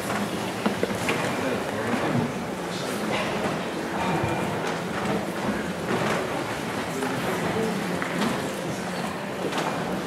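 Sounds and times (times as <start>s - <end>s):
faint audience murmuring: 0.0s - 10.0s.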